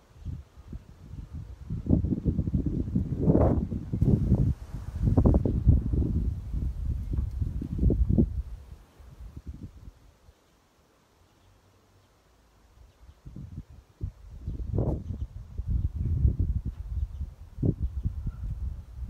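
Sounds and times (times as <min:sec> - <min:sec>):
wind buffeting microphone: 0:00.0 - 0:10.1, 0:13.1 - 0:19.0.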